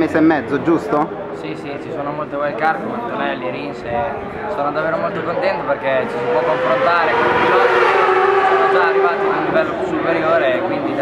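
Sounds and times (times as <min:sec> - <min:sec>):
drone falling in pitch: 0:06.1 - 0:09.7
young man talking: 0:08.6 - 0:11.0.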